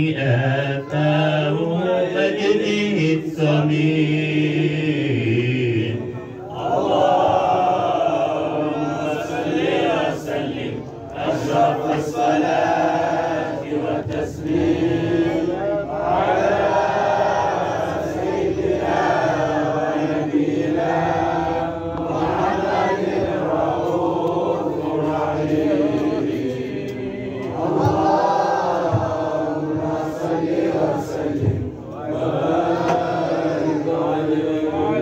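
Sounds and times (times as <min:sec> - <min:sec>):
men chanting together: 0:00.0 - 0:35.0.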